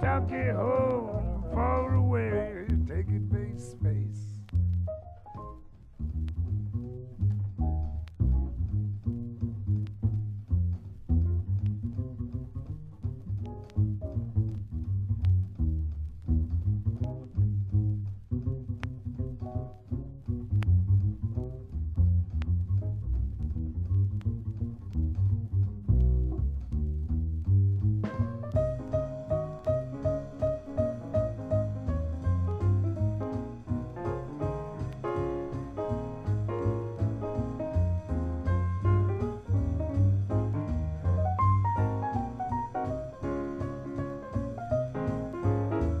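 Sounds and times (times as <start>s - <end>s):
jazz music with plucked bass: 0.0s - 46.0s.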